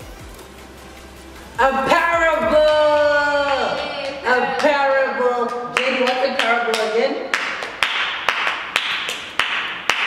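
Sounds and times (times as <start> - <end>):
person speaking: 1.6 - 7.3
hands clapping in a steady beat: 2.6 - 4.8, 5.4 - 10.0.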